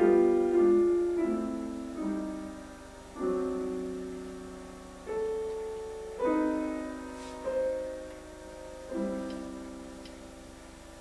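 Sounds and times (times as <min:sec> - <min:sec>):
grand piano chord: 0:00.0 - 0:11.0
faint ticks: 0:09.2 - 0:10.2.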